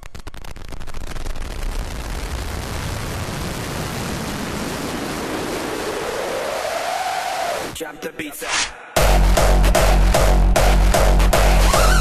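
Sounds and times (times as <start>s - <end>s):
white noise sweep: 3.1s - 7.8s.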